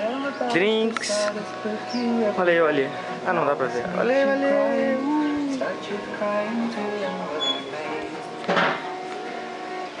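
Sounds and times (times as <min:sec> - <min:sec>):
music from small stereo: 0:00.0 - 0:10.0.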